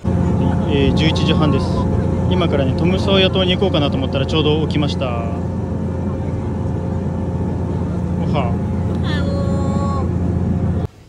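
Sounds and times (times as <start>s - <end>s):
low engine drone: 0.0s - 11.0s.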